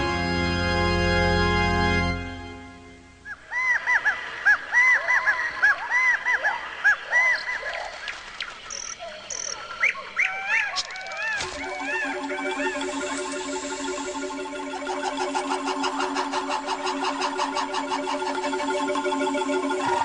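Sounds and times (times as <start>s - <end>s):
music with held notes: 0.0s - 3.3s, 11.4s - 20.0s
animal calls and chirps: 3.3s - 20.0s.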